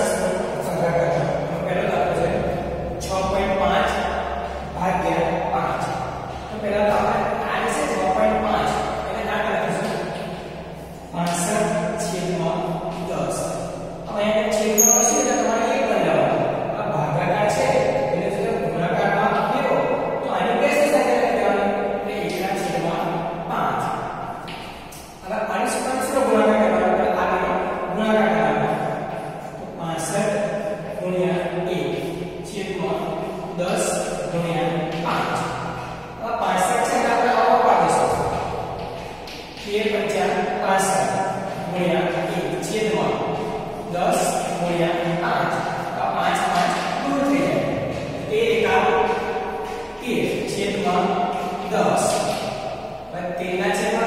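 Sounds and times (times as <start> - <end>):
man talking: 0.0 - 52.5, 53.1 - 54.0.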